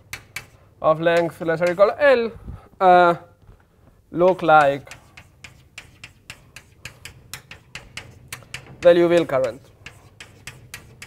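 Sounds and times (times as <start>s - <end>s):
chalk tapping and scratching: 0.0s - 2.0s, 4.2s - 11.0s.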